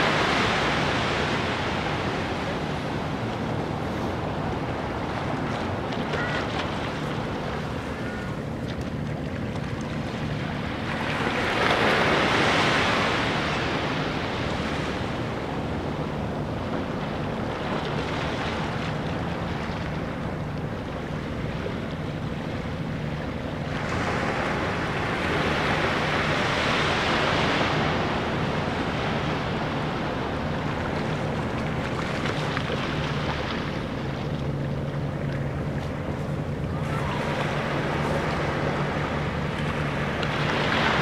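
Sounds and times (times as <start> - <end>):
small waves washing on beach: 0.0 - 41.0.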